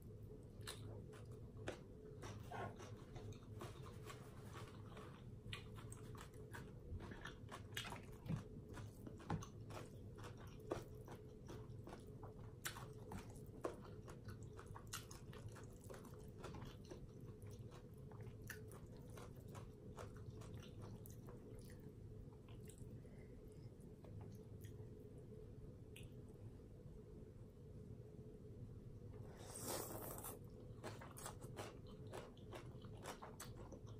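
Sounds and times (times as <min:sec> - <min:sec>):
faint steady hum: 0:00.0 - 0:33.9.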